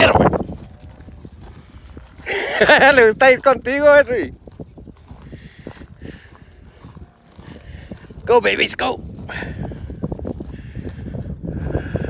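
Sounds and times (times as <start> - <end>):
footfalls on dry grass: 0.0 - 8.4.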